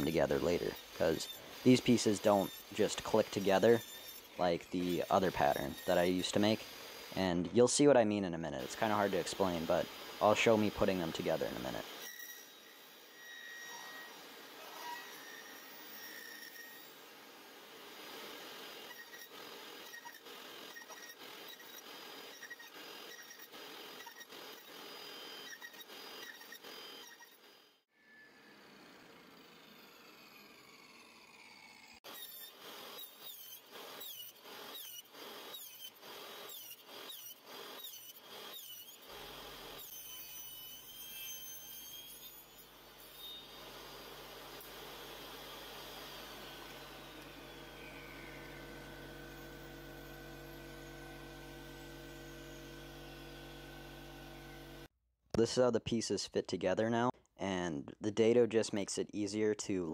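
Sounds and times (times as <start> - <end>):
table saw cutting wood: 0.0 - 7.6, 8.6 - 54.9.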